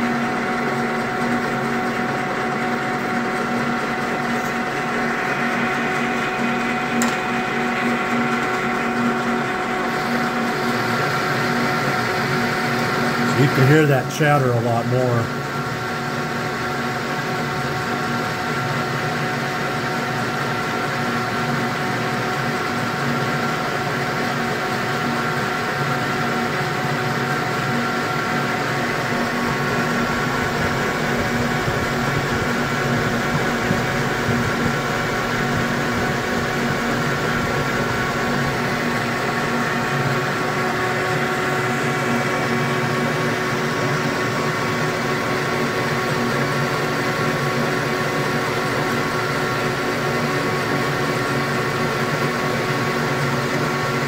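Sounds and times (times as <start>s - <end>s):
lathe motor and gear noise: 0.0s - 54.0s
lathe tool chattering whine: 0.0s - 54.0s.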